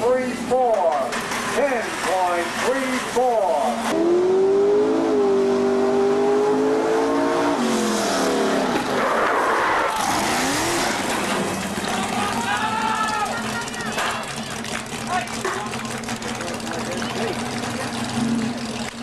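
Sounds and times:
racing engine revving: 2.4 - 19.0.

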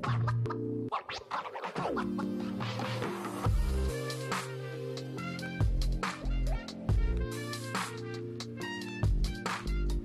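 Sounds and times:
music: 0.0 - 10.0
turntable scratching: 0.0 - 10.0.

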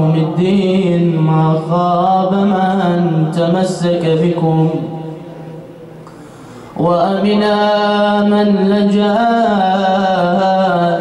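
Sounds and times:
man chanting religious recitation: 0.0 - 5.7, 6.8 - 11.0.

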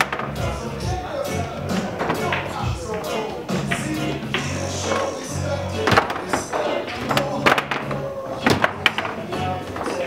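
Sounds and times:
foosball knocks: 0.0 - 0.4, 1.8 - 5.1, 5.8 - 10.0
background music: 0.0 - 10.0.

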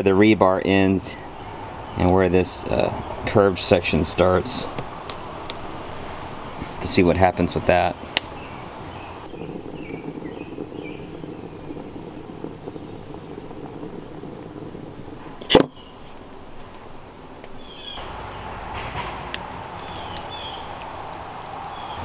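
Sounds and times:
wood fire rushing and crackling: 1.0 - 22.0
faint bird chirps: 8.4 - 15.1.

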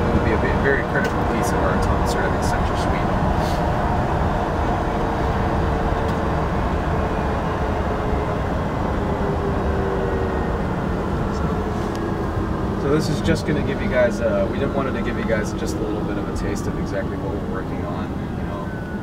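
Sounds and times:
faint steady whine: 0.0 - 19.0
road and tyre noise in car: 0.0 - 19.0.

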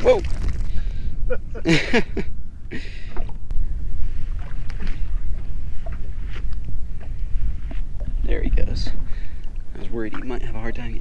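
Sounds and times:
water lapping against boat hull: 0.0 - 11.0
wind rumble on microphone: 0.0 - 11.0.

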